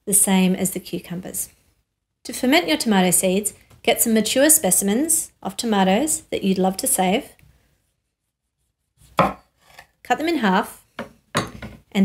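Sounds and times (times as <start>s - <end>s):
knife knocking on wooden board: 9.2s - 9.5s.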